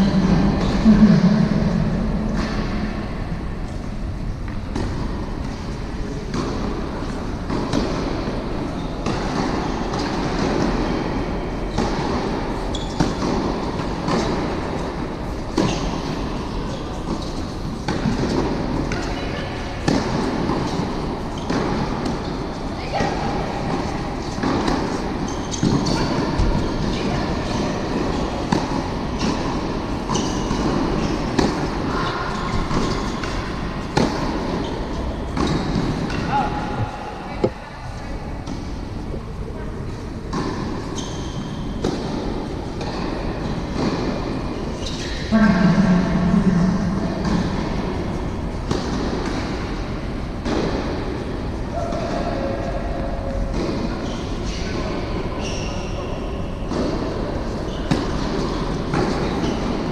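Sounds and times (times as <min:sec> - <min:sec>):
steady rumbling noise: 0:00.0 - 0:05.4, 0:45.3 - 0:48.6
tennis balls struck by rackets: 0:04.5 - 0:19.0, 0:19.8 - 0:37.6, 0:40.2 - 0:45.3, 0:46.2 - 0:52.2, 0:52.9 - 0:54.1, 0:56.6 - 0:59.9.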